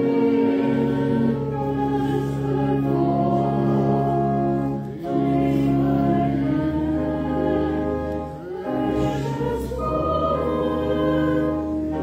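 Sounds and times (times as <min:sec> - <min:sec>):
congregation singing a hymn: 0:00.0 - 0:12.0
instrumental accompaniment: 0:00.0 - 0:12.0.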